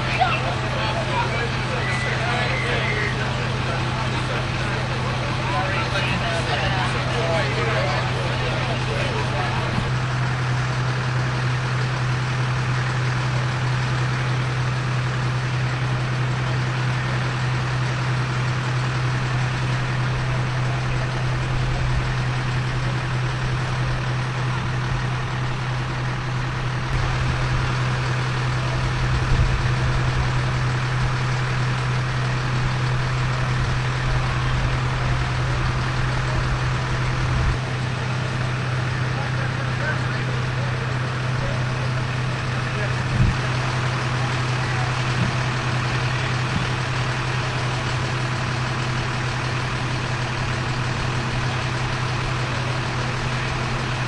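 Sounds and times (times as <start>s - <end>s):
indistinct voices: 0.0s - 54.0s
vehicle engines idling: 0.0s - 54.0s.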